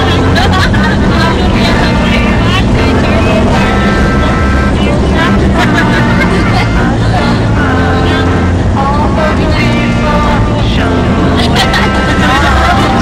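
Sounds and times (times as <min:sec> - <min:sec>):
passengers talking: 0:00.0 - 0:13.0
van engine and road rumble: 0:00.0 - 0:13.0.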